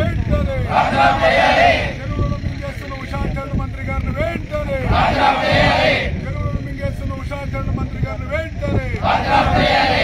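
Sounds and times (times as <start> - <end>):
steady low rumble: 0.0 - 10.0
crowd chanting in unison: 0.7 - 2.0, 4.9 - 6.1, 9.0 - 10.0.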